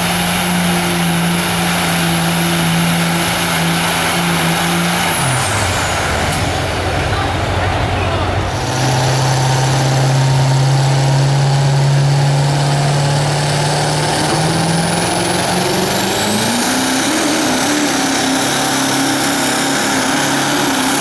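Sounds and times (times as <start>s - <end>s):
diesel engine revving under load: 0.0s - 21.0s.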